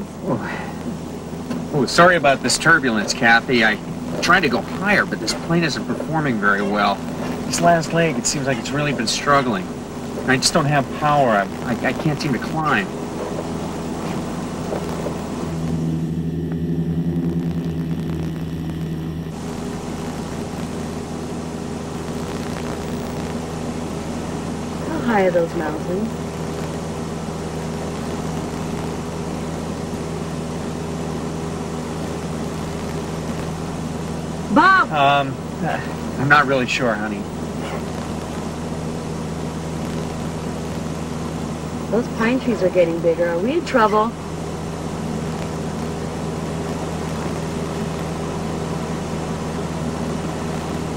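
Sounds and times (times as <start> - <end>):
light aircraft engine droning: 0.0 - 50.9
pilot speaking: 0.2 - 15.6, 24.8 - 26.2, 34.4 - 38.2, 41.8 - 44.3.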